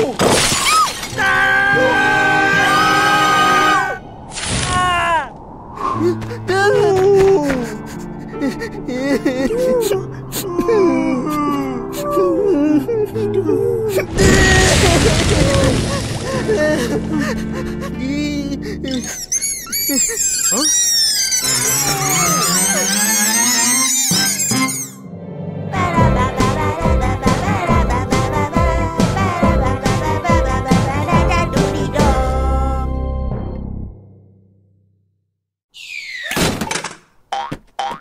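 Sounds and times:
loud thud: 14.1 - 16.6
high squeaky chirps: 18.8 - 25.1, 35.7 - 36.4
springy cartoon boings: 18.9 - 25.0
falling whistle swoosh: 19.4 - 25.2
low tone rising in pitch: 21.2 - 27.2.

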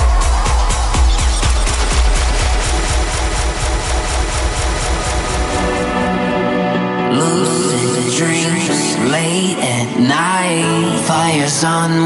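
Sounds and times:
electronic house music: 0.0 - 12.0.

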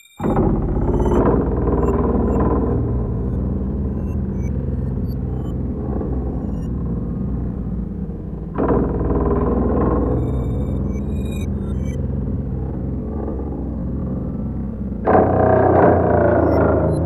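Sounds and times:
rumbling synthesizer drone: 0.1 - 17.0.

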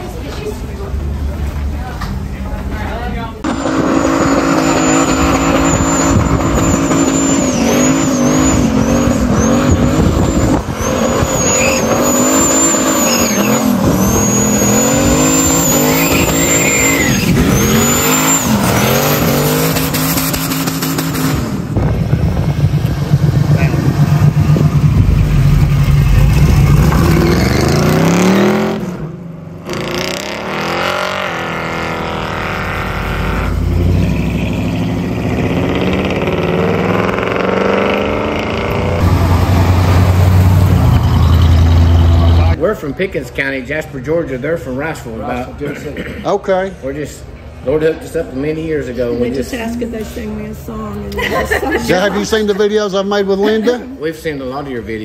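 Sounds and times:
car engine revving: 3.4 - 42.6
tyres squealing: 3.5 - 20.9.

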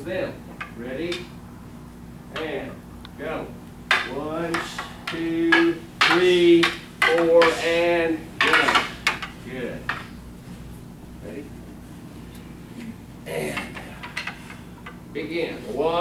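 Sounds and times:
wooden swords clacking: 3.9 - 10.2.

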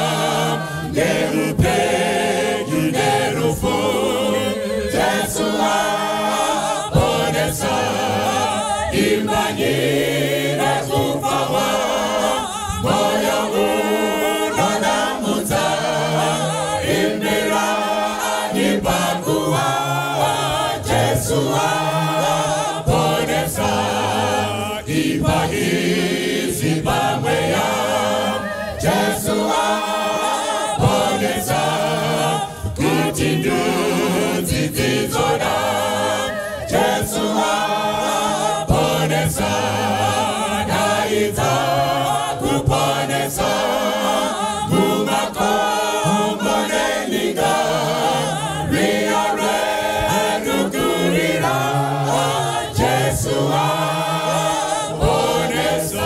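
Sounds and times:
mixed choir singing gospel: 0.0 - 56.0.

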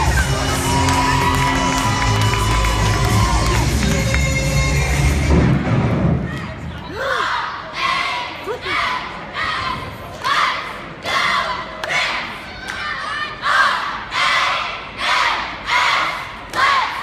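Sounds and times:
cheerleaders shouting in unison: 6.5 - 17.0.

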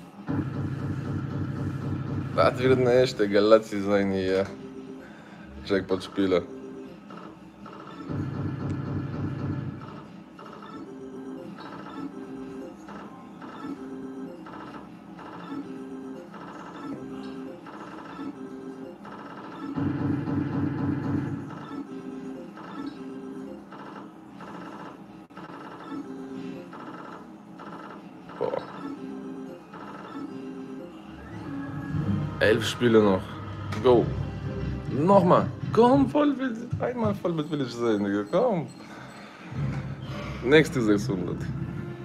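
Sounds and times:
slot machine chiming tones: 37.0 - 39.6.

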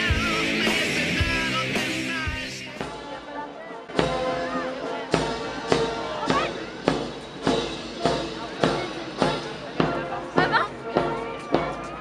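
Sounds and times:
bass drum march beat: 0.0 - 3.2, 3.9 - 12.0
marching military band: 0.0 - 12.0.

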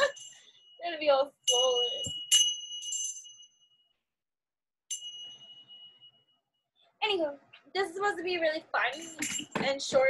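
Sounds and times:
brass chime ringing: 4.9 - 6.3.

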